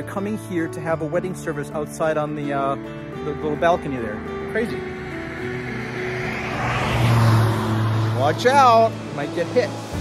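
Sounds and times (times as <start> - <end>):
soft guitar music: 0.0 - 5.8
car approaching on road: 2.8 - 10.0.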